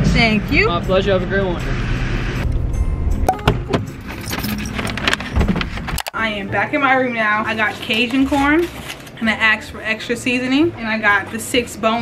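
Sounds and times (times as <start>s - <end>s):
small hard objects jingling: 7.6s - 9.2s.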